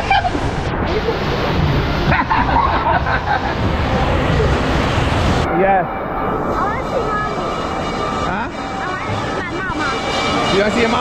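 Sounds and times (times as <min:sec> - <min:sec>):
water rushing and splashing: 0:00.0 - 0:11.0.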